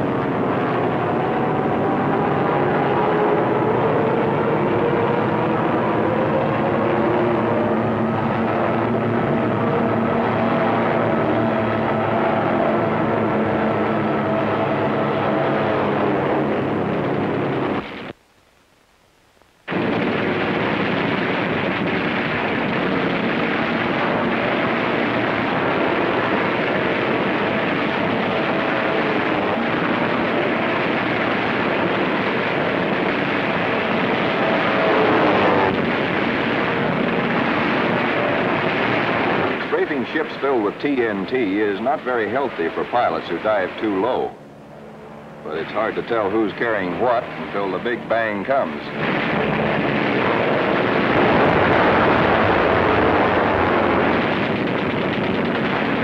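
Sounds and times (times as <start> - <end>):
propeller aircraft engine drone: 0.0 - 18.9, 19.6 - 56.0.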